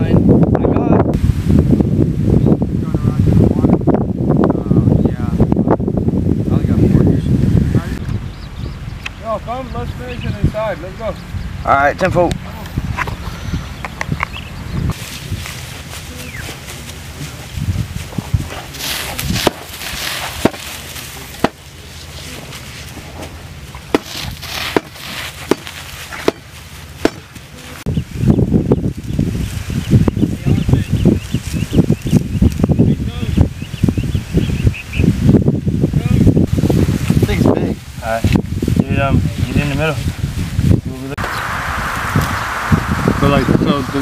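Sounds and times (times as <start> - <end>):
dry grass rustling and crackling: 14.9 - 32.8.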